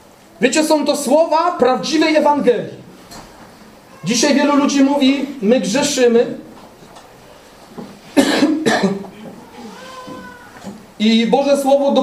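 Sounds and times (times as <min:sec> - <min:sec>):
person coughing: 0:08.2 - 0:09.4.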